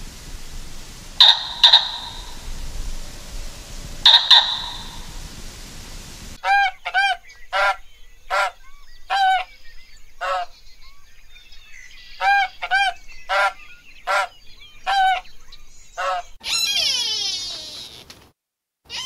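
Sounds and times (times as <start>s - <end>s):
loud high-pitched sound: 0.0s - 6.2s
geese honking: 0.0s - 9.6s, 10.2s - 10.6s, 12.1s - 15.4s, 16.0s - 16.4s.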